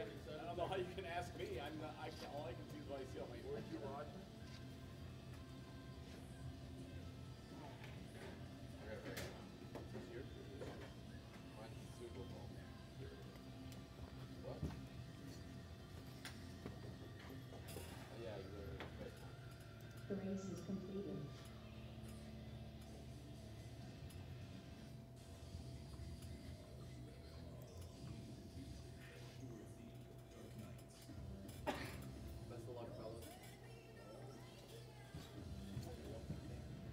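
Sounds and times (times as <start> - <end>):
steady low hum: 0.0 - 36.9.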